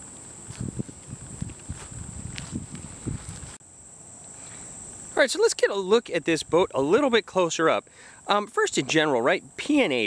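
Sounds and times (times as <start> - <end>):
footsteps on grass: 0.0 - 3.6
crickets chirring: 0.0 - 10.0.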